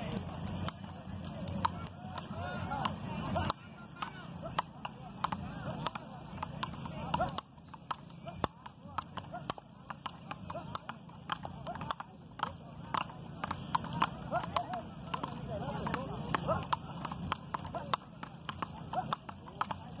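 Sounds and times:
paddles striking rubber ball: 0.0 - 20.0.

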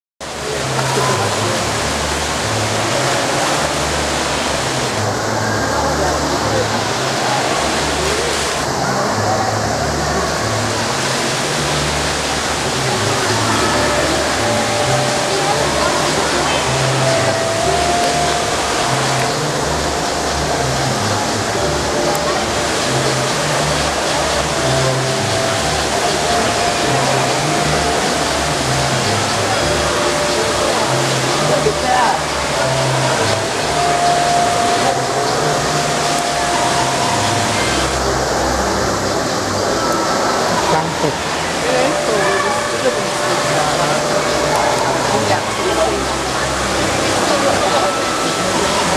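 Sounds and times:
indistinct crowd chatter: 0.2 - 48.9
indoor fountain water falling: 0.2 - 48.9.

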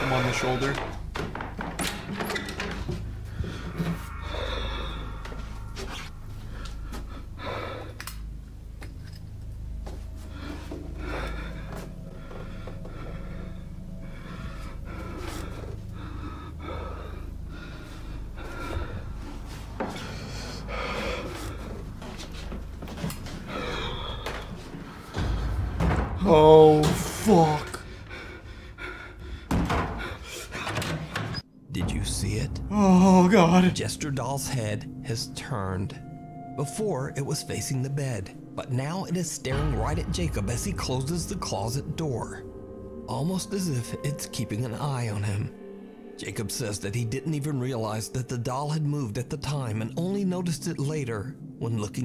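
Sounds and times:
bed creaking: 0.0 - 6.8
man breathing heavily: 2.7 - 31.4.

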